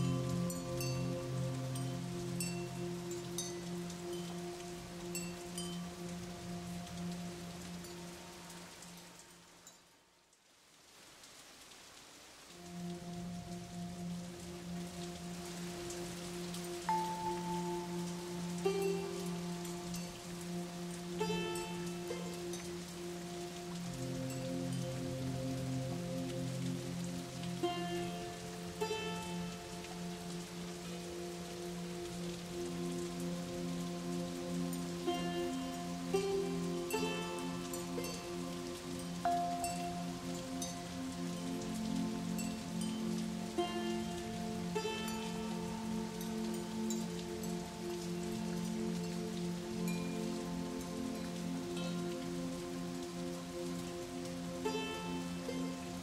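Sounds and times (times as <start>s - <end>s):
calm music with mallet notes: 0.0s - 9.9s, 12.5s - 56.0s
rain-like hiss: 0.0s - 56.0s.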